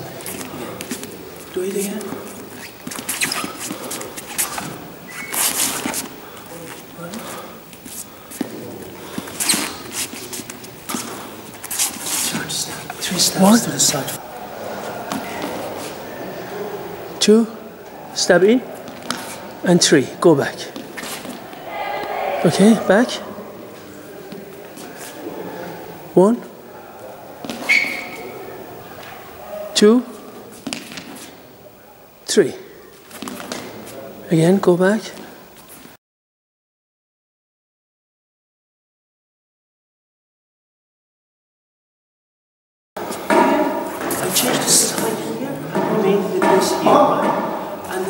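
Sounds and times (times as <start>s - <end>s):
sneakers squeaking on floor: 1.7s - 6.1s, 7.9s - 14.2s, 14.8s - 16.5s, 18.4s - 19.6s, 20.7s - 23.0s, 27.4s - 28.5s, 32.9s - 34.0s, 43.0s - 48.0s
rubber sole squeaking on floor: 2.6s - 6.0s, 9.4s - 10.2s, 27.4s - 28.4s.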